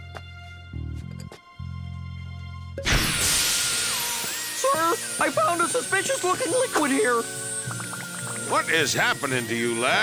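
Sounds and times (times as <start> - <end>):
background music: 0.0 - 10.0
sparkling fizzing magic hiss: 2.8 - 5.0.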